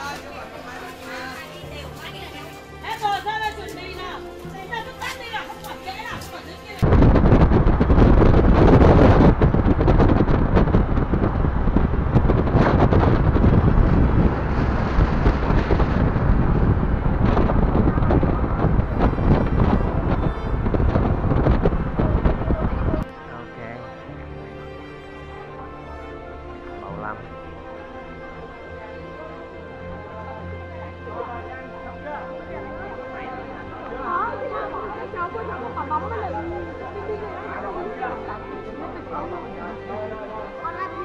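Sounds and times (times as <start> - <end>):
voices: 0.0 - 6.9, 28.3 - 41.0
background music: 0.0 - 41.0
wind buffeting microphone: 0.0 - 41.0.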